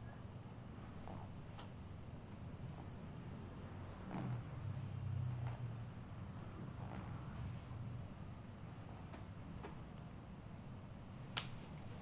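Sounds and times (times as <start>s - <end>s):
low room hum: 0.0s - 12.0s
hands massaging a foot: 3.8s - 4.7s, 6.5s - 7.8s.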